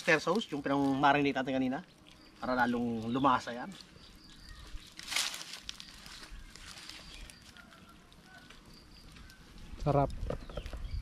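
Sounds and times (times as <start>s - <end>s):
marinade hissing on charcoal: 0.0s - 4.5s
outdoor background sound: 0.0s - 11.0s
faint bird chirps: 1.2s - 11.0s.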